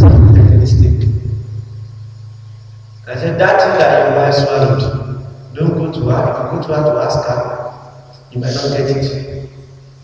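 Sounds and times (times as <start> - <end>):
low humming rumble: 0.0 - 10.0.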